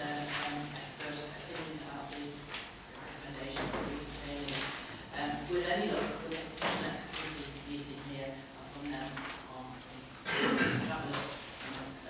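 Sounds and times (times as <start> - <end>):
person speaking into microphone: 0.0 - 12.0.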